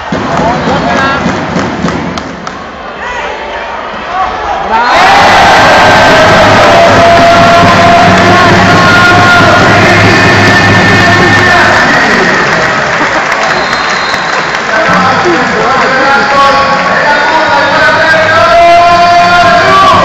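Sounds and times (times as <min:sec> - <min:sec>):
crowd cheering: 0:00.0 - 0:20.0
loud music: 0:05.0 - 0:13.4, 0:17.1 - 0:20.0.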